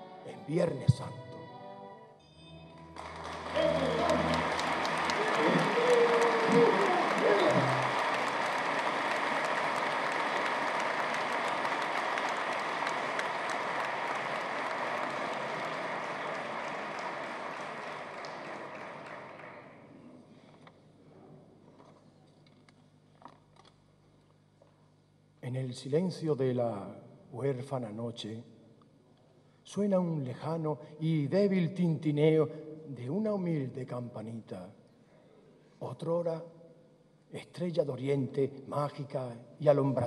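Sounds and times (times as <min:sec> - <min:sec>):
audience applauding: 0:02.8 - 0:20.1.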